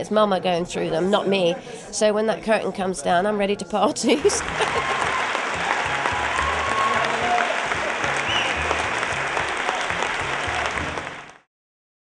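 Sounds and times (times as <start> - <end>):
audience applauding: 4.2 - 11.5.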